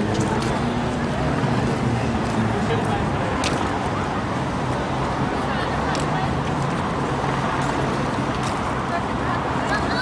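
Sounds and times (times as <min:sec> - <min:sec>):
traffic noise: 0:00.0 - 0:10.0.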